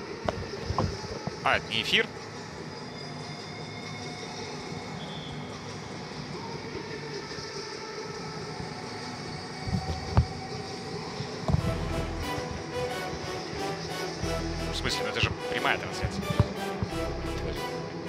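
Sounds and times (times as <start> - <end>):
stadium background noise: 0.0 - 18.0.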